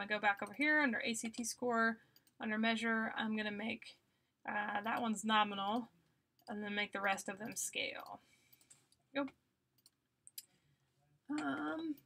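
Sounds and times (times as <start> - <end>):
computer mouse clicks: 9.8 - 10.5.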